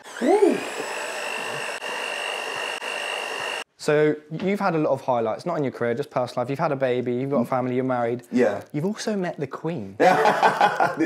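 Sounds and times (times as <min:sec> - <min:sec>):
electric hand mixer whining: 0:00.0 - 0:03.7.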